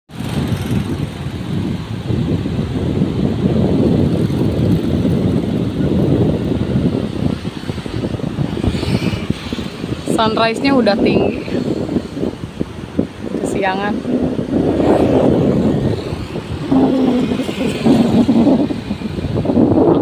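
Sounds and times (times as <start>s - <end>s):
wind buffeting microphone: 0.1s - 20.0s.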